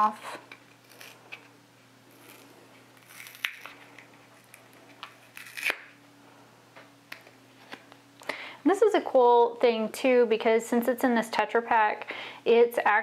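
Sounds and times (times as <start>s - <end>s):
faint steady hum: 0.0s - 13.0s
sharp crinkles: 0.7s - 1.5s, 2.1s - 6.0s.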